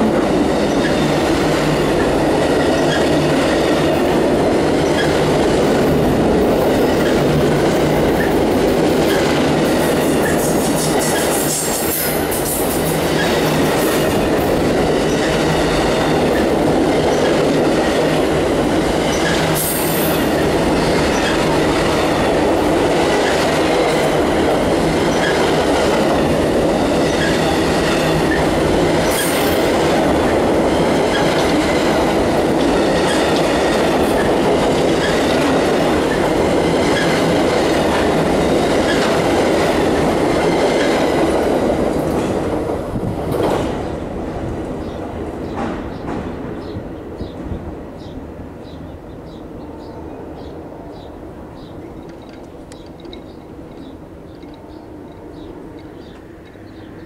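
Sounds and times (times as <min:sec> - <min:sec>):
train wheel-on-rail rumble: 0:00.0 - 0:57.0
wheels clicking over rail joints: 0:51.6 - 0:56.9.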